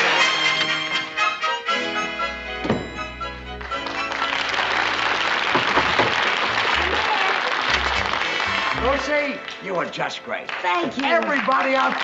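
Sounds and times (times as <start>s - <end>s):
low band notes: 2.1s - 9.3s
audience applauding: 3.4s - 12.0s.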